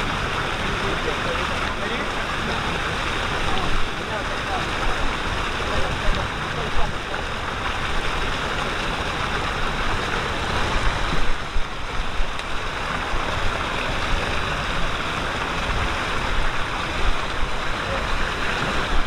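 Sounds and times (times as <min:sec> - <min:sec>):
water rushing and churning: 0:00.0 - 0:19.0.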